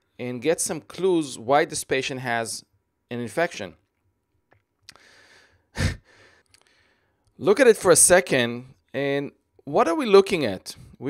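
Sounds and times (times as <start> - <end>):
man breathing: 4.9 - 7.3.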